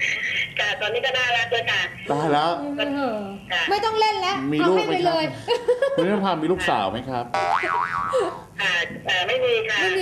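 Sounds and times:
comic boing sound effect: 7.4 - 8.2.

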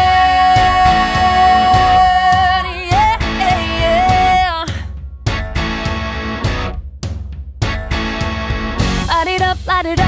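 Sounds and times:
rock band stop-start hits: 5.3 - 6.8, 7.6 - 9.2.

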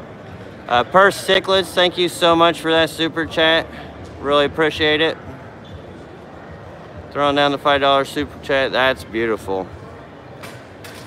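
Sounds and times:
exhibition hall background noise: 0.0 - 11.0.

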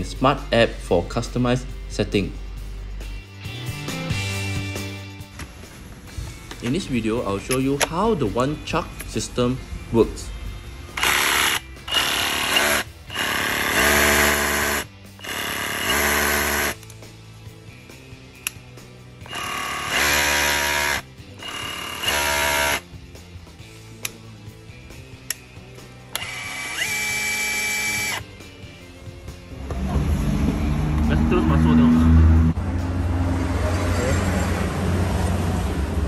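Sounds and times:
rotary hammer motor whine: 11.0 - 16.8, 19.3 - 22.8, 26.2 - 28.2.

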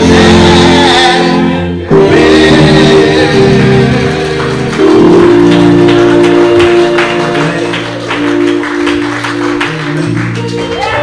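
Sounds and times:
church keyboard chords: 0.0 - 11.0.

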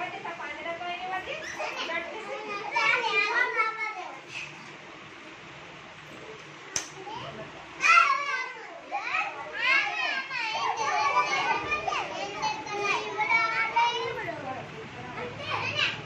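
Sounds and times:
children chattering and calling out: 1.0 - 5.1, 7.0 - 16.0.

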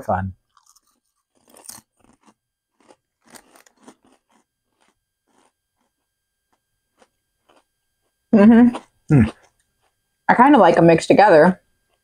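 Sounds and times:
potato chips crunched by mouth: 0.5 - 5.5.

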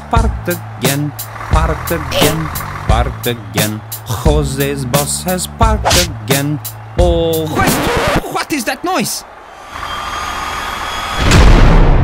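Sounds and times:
loud crash: 11.0 - 12.0.

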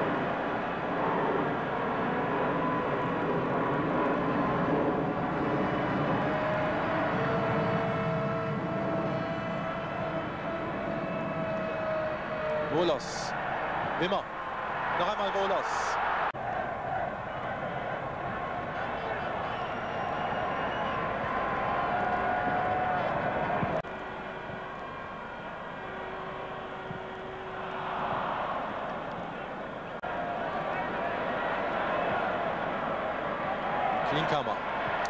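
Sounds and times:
stadium crowd din: 4.3 - 35.0.

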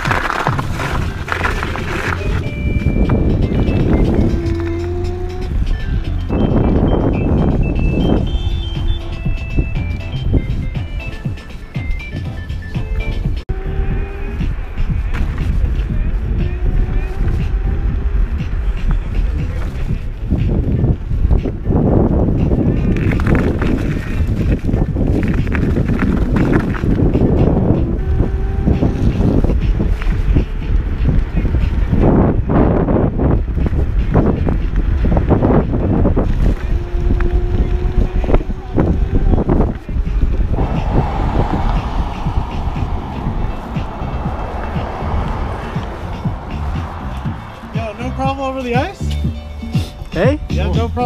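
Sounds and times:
scooter tyre rumble: 0.0 - 11.8, 12.9 - 49.0
wind buffeting microphone: 0.0 - 51.0.

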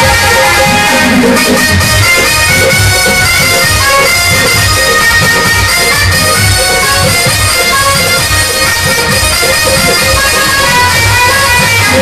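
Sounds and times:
drum beating: 0.0 - 12.0
harmonium sustained notes: 0.0 - 12.0.

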